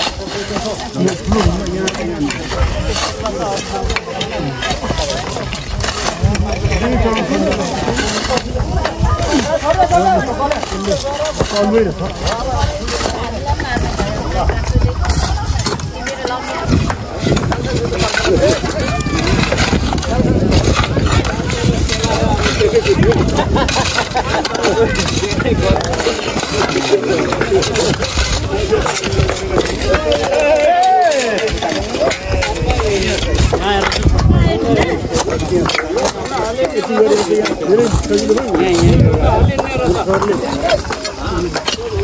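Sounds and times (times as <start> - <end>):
people talking: 0.0 - 42.0
tools striking stony ground: 0.0 - 42.0.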